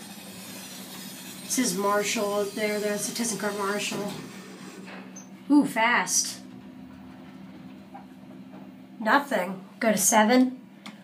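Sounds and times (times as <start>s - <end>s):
elevator hum: 0.1s - 10.8s.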